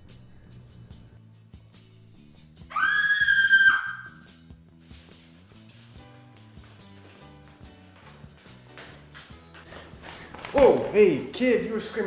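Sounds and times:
background music with bass line: 0:00.0 - 0:10.5
high-pitched scream: 0:02.7 - 0:04.3.

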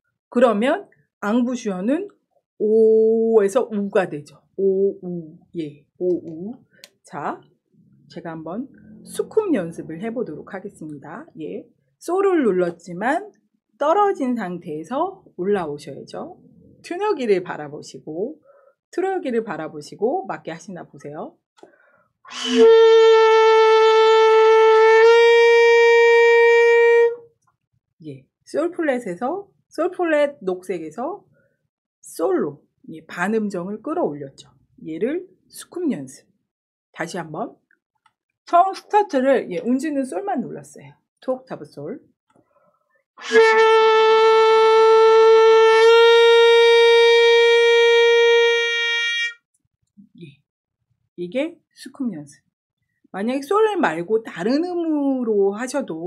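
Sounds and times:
saxophone holding a long note: 0:22.3 - 0:27.2, 0:43.2 - 0:49.4.

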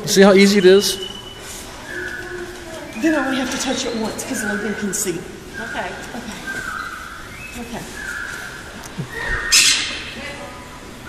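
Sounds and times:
bird squawking: 0:00.5 - 0:10.2.

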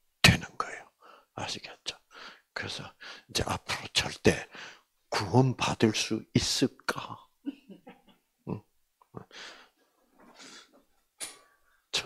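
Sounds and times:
breath into microphone: 0:04.5 - 0:04.9, 0:09.3 - 0:11.5.

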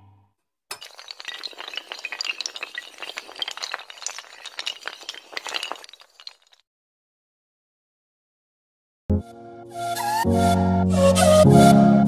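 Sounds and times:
tiles toppling in a chain: 0:00.7 - 0:06.6.

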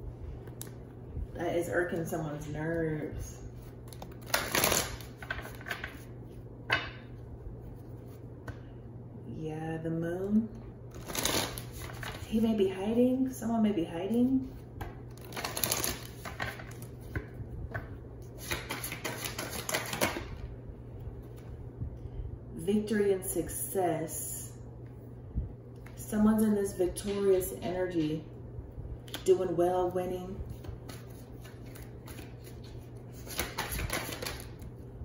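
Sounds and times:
faint steady hum: 0:00.0 - 0:35.0
cards shuffling: 0:03.5 - 0:06.1, 0:10.9 - 0:12.2, 0:14.5 - 0:20.3, 0:30.5 - 0:34.6
cards clicking and tapping: 0:14.8 - 0:20.2, 0:33.2 - 0:34.5.

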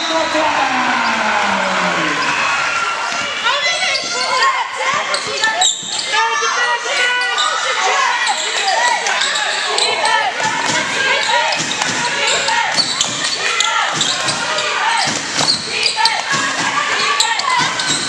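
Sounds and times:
players calling: 0:00.0 - 0:18.0
spectators' voices: 0:00.0 - 0:18.0.

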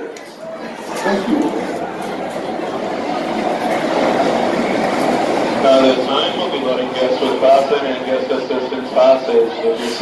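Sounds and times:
people shuffling: 0:00.0 - 0:07.9
crowd murmur: 0:00.0 - 0:10.0.

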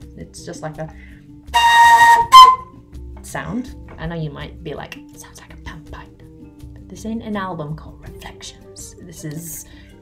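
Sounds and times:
breathy flute notes: 0:01.5 - 0:02.8.

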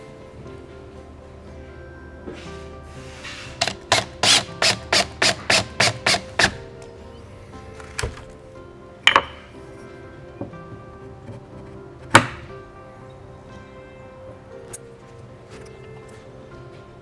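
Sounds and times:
cordless drill driving screw: 0:03.6 - 0:06.6.

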